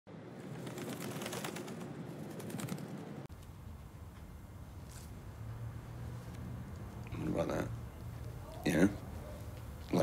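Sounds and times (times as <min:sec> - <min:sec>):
birds chirping: 0:03.4 - 0:10.0.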